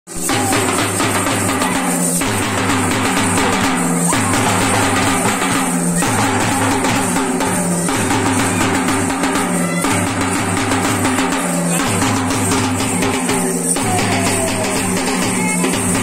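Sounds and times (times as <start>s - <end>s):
folk drumming with sticks: 0.1s - 16.0s.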